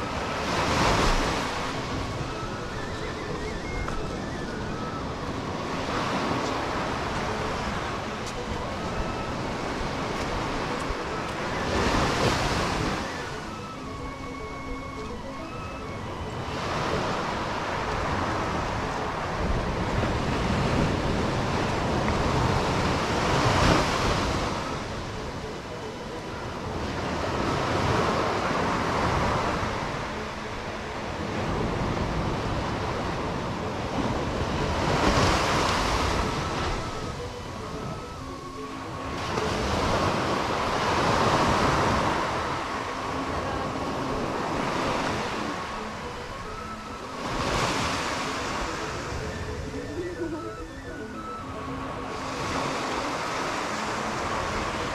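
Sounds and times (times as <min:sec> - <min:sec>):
wind rumbling on microphone: 0:00.0 - 0:54.9.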